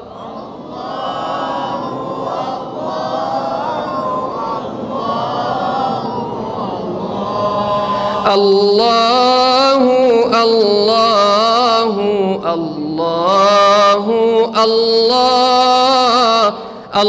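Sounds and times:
crowd singing unaccompanied: 0.0s - 17.0s.

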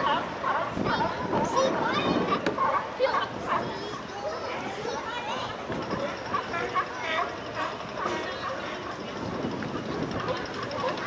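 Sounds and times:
sea lions barking: 0.0s - 4.7s, 5.9s - 11.0s
people chattering: 0.0s - 11.0s.

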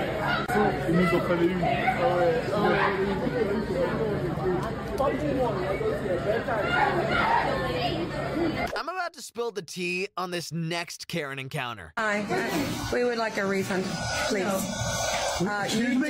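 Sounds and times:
indistinct voices talking: 0.0s - 16.0s.

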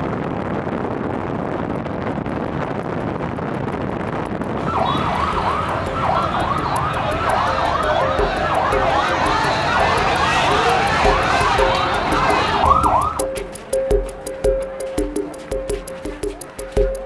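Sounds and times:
vehicle road and wind noise: 0.0s - 13.7s
warbling emergency siren: 4.6s - 14.4s.

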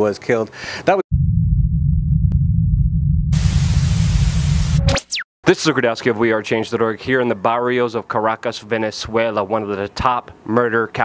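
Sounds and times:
steady low rumble: 1.1s - 5.0s
loud hiss of static: 3.4s - 4.9s.

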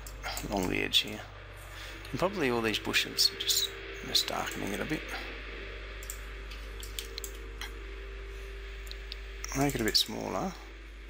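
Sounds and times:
steady low hum: 0.0s - 11.0s
computer mouse clicks: 6.0s - 7.4s.

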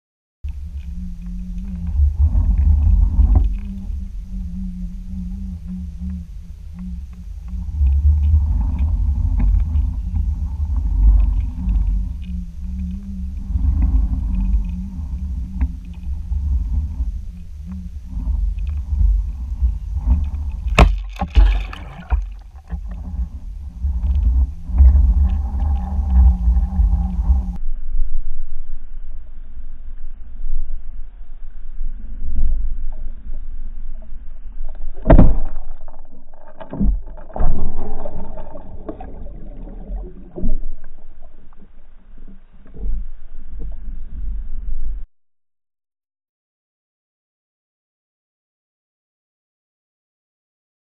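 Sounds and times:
underwater low rumble: 0.4s - 45.1s
wavering hum: 0.5s - 45.0s.

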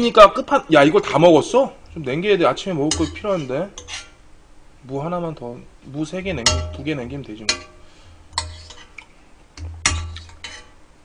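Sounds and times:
metal spoon clinking in pot: 2.9s - 4.1s, 6.4s - 7.8s, 8.4s - 10.8s
spoon clicking and scraping: 2.9s - 4.2s, 7.4s - 10.8s.

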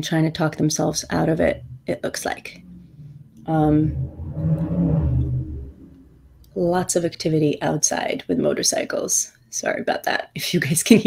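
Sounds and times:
motorcycle engines rumbling: 0.0s - 7.2s.

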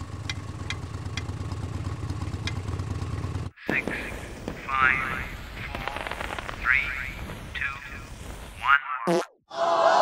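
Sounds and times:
firework fuse hissing and crackling: 3.7s - 8.7s.

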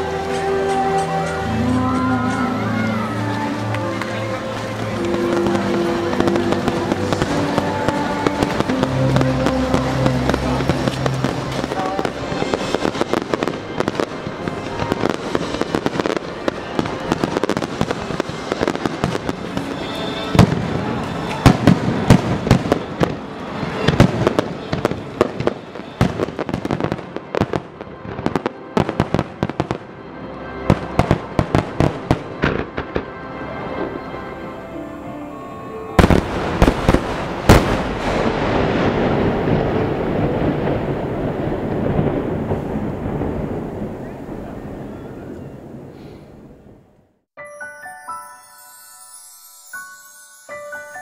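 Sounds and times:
music with held notes: 0.0s - 40.7s, 47.4s - 51.0s
fireworks bangs and crackling: 3.2s - 30.0s, 30.7s - 34.1s, 36.0s - 46.0s.

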